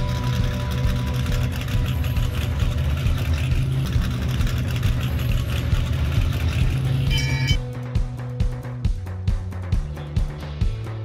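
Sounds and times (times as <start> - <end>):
vehicle engine rumbling: 0.0 - 9.6.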